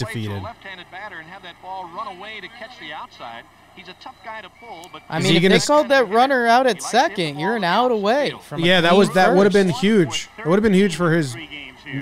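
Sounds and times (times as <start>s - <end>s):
broadcast commentary speech: 0.0s - 12.0s.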